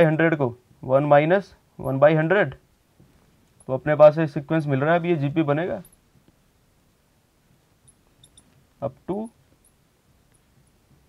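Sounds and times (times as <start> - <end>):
person speaking: 0.0 - 2.6, 3.6 - 5.9.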